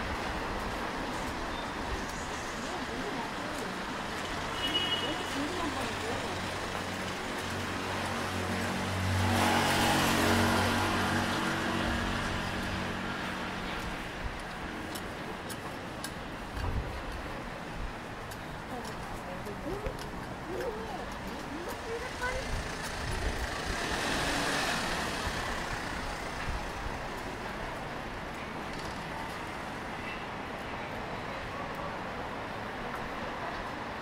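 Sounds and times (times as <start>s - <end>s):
city street traffic: 0.0s - 34.0s
vehicle passing close by: 7.7s - 13.1s, 22.1s - 26.4s.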